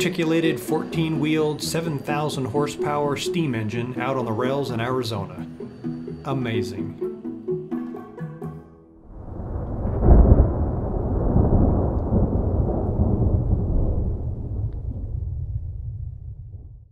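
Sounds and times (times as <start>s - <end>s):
light background music: 0.0s - 9.0s
thunder rumble: 9.0s - 16.9s.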